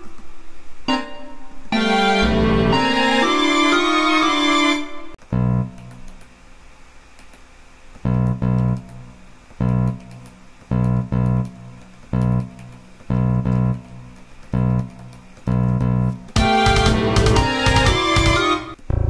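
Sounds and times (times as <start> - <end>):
sampled bass note bursts: 5.2 - 6.0, 8.0 - 9.0, 9.6 - 10.1, 10.7 - 17.6.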